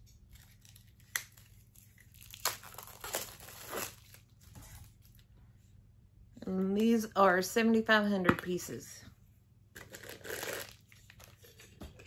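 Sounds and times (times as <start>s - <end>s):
plastic wrapping tearing and crinkling: 0.3s - 5.3s, 9.8s - 11.6s.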